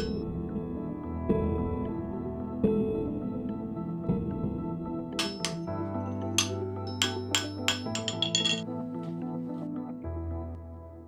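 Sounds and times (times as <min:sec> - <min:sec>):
hammer striking metal on anvil: 0:00.0 - 0:00.2, 0:05.2 - 0:05.7, 0:06.4 - 0:08.6
soft ambient music: 0:00.0 - 0:11.0.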